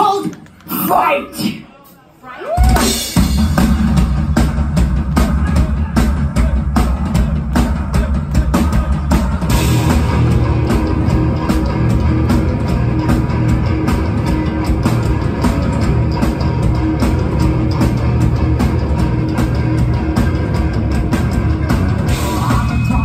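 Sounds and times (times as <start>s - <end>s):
drum kit beating: 2.6s - 23.0s
rock band playing loudly: 2.6s - 23.0s.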